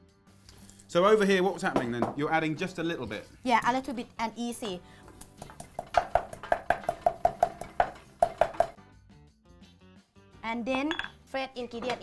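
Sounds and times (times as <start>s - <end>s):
mortar and pestle pounding: 5.2s - 8.8s.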